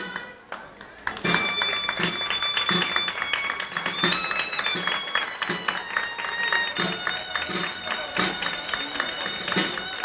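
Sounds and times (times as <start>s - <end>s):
shrill wind instrument melody: 1.2s - 10.0s.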